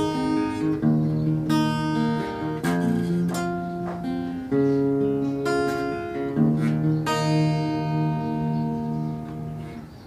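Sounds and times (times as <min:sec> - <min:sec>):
strummed acoustic guitar chord: 0:00.0 - 0:10.0.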